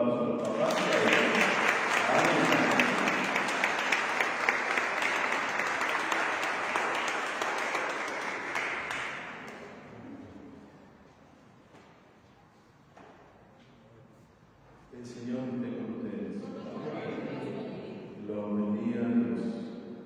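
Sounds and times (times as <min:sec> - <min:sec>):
congregation applauding: 0:00.4 - 0:10.1.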